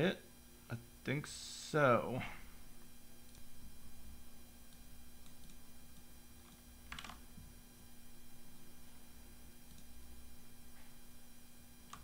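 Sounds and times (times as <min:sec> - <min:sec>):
faint electrical hum: 0:00.0 - 0:12.0
keyboard clicks: 0:04.7 - 0:05.6, 0:06.4 - 0:07.2.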